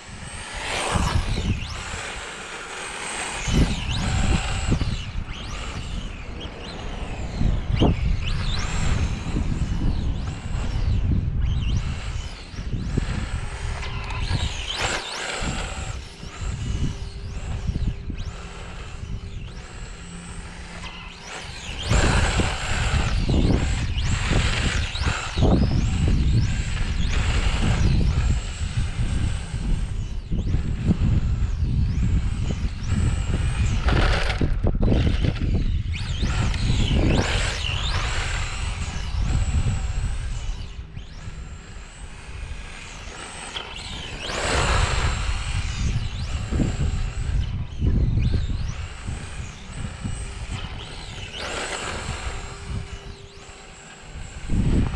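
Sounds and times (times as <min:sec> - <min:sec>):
electric motor whining: 0:00.0 - 0:54.9.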